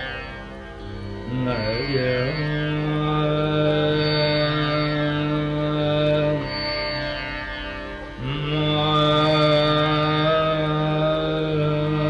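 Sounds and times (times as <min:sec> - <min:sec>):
man singing long held note: 0:01.2 - 0:07.2, 0:08.2 - 0:12.0.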